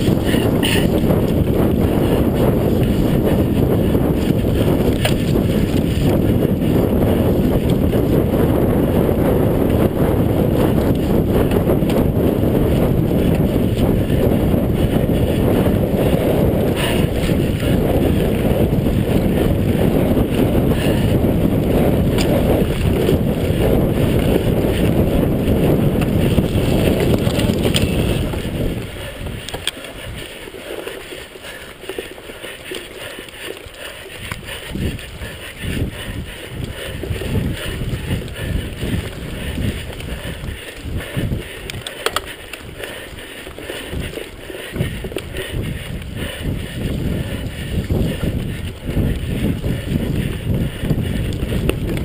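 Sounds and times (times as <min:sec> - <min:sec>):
bike knocks and rattles: 0:00.0 - 0:01.5, 0:02.4 - 0:08.1, 0:19.6 - 0:29.7
bike tyres rumbling on dirt: 0:00.0 - 0:52.0
wind buffeting microphone: 0:00.0 - 0:52.0.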